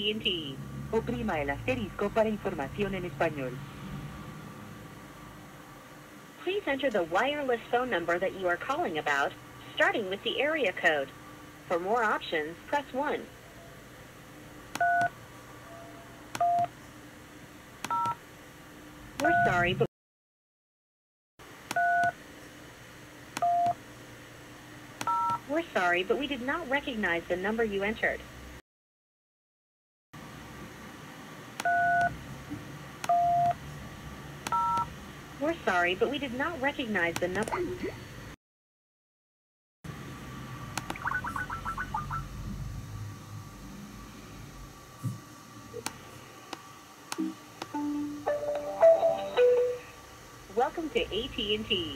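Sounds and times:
touch-tone dial beeps: 0:17.9 - 0:18.2
clicks: 0:40.8 - 0:41.1
short electronic beeps: 0:40.9 - 0:42.3.

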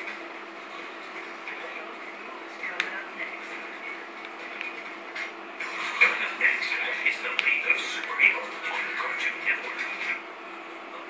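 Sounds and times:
television cartoon audio: 0:00.0 - 0:11.0.

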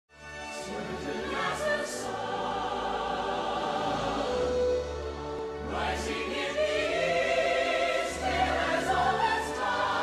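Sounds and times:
orchestral music: 0:00.1 - 0:10.0
choir singing: 0:00.5 - 0:10.0.

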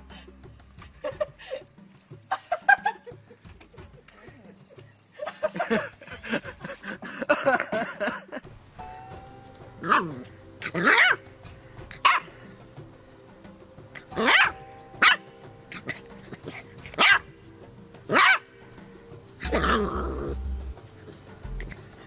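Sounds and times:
quiet background music: 0:00.0 - 0:22.0
dog barking: 0:10.8 - 0:11.2, 0:12.0 - 0:12.3, 0:14.2 - 0:15.2, 0:17.0 - 0:17.3, 0:18.1 - 0:18.5.

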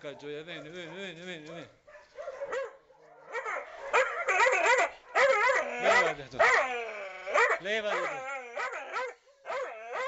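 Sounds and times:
dog yelping and crying: 0:02.2 - 0:10.0.

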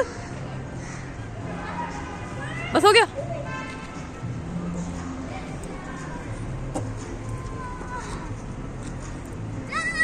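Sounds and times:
steady background noise: 0:00.0 - 0:10.0
child squealing: 0:09.7 - 0:10.0.

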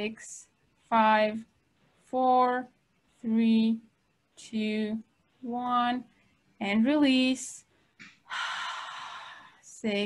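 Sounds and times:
woman exhaling: 0:08.3 - 0:09.6.

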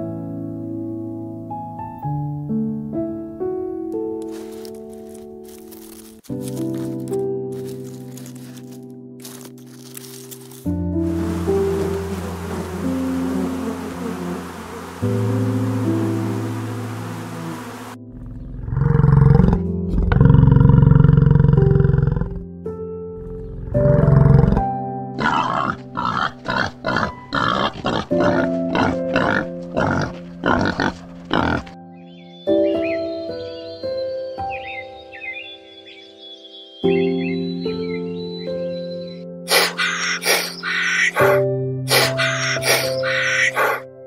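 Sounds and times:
soft piano music: 0:00.0 - 0:39.5, 0:40.5 - 0:44.0
steady hiss: 0:11.0 - 0:18.0
bison bellowing: 0:11.2 - 0:22.4, 0:25.2 - 0:31.8, 0:39.5 - 0:43.8.

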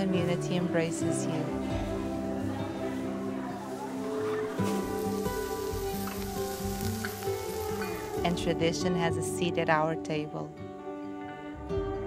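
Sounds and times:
background music: 0:00.0 - 0:12.0
fish sizzling on a grill: 0:03.5 - 0:08.6.

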